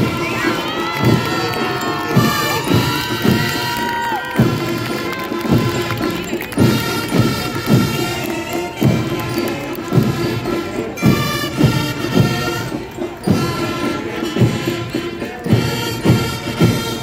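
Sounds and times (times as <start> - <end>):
crowd shouting and cheering: 0.0 - 17.0
marching band playing: 0.0 - 17.0.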